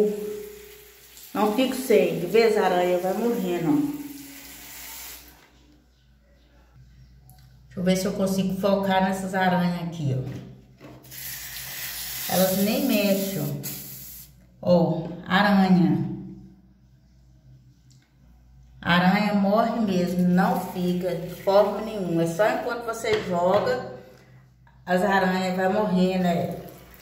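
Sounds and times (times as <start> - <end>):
spray bottle hissing: 11.0 - 14.4.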